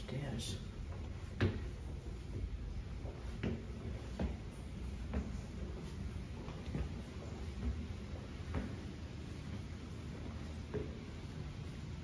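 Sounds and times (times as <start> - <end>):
footsteps on stairs: 0.0 - 12.0.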